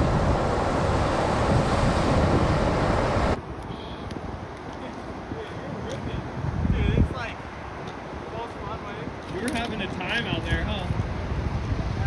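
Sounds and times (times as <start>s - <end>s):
low outdoor rumble: 0.0s - 7.4s.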